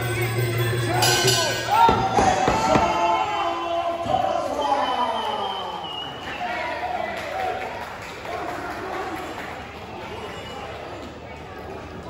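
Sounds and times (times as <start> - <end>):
ring music with wavering melody: 0.0 - 1.7.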